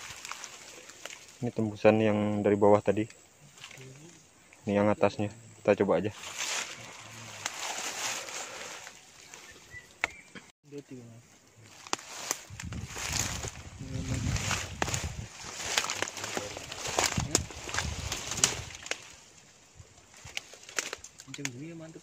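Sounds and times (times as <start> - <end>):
footsteps through leaves and mud: 0.0 - 1.8, 6.0 - 10.0, 11.6 - 19.4
twigs crackling: 0.0 - 2.2, 2.9 - 4.6, 6.0 - 10.5, 11.3 - 22.0.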